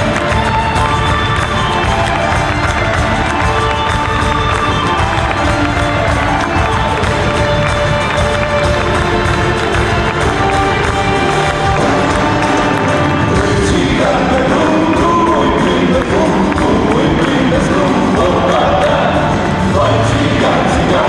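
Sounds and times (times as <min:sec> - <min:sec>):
audience cheering: 0:00.0 - 0:21.0
drums beating: 0:00.0 - 0:21.0
live band playing: 0:00.0 - 0:21.0
person singing: 0:09.2 - 0:21.0.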